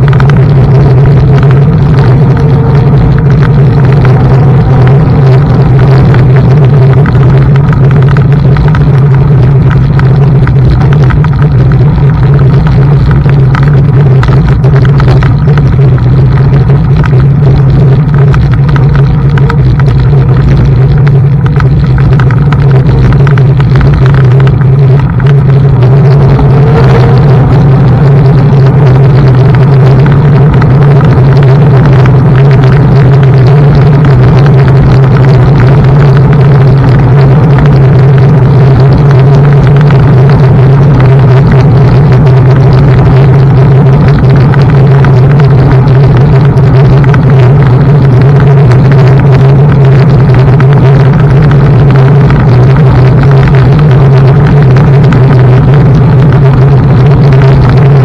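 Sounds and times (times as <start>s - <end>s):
wind and road rumble: 0.0s - 58.0s.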